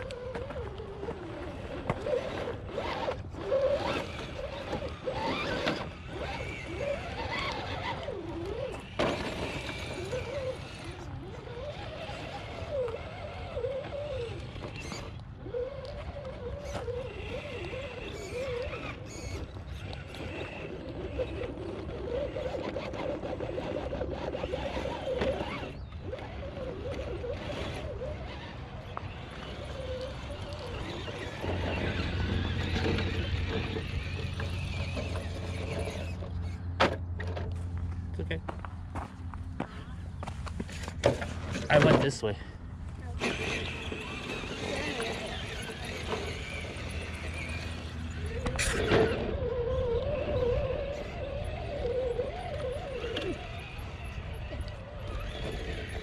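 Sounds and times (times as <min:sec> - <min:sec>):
rc car electric motors whining: 0:00.0 - 0:37.9, 0:40.1 - 0:56.0.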